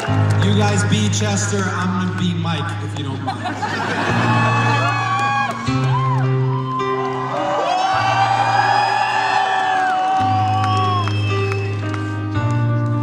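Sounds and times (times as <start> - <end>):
crowd cheering and whooping: 0.0 - 0.3, 3.6 - 12.2
sustained keyboard chords: 0.0 - 7.5, 10.3 - 13.0.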